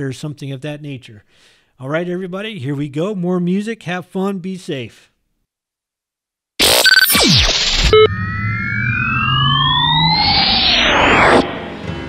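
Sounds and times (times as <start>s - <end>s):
synthesized radio jingle: 6.6s - 11.8s
noisy whoosh: 7.2s - 12.0s.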